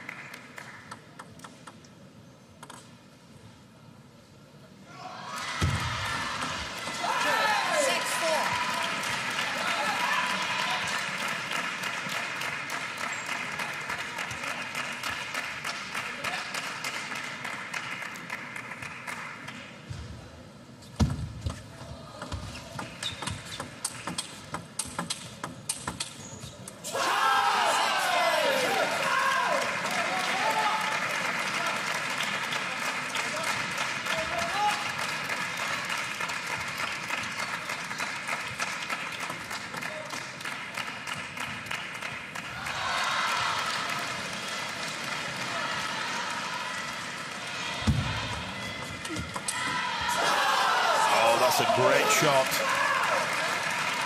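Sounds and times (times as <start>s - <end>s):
crowd cheering and shouting: 4.9s - 11.0s, 26.9s - 31.0s, 42.6s - 44.1s, 45.4s - 53.7s.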